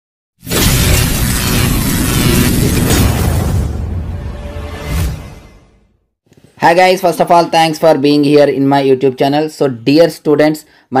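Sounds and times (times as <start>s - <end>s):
crash-like noise wash: 0.4s - 5.4s.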